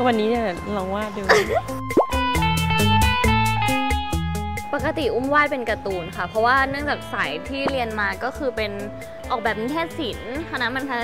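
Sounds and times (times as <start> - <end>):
light music with plucked notes: 0.0 - 11.0.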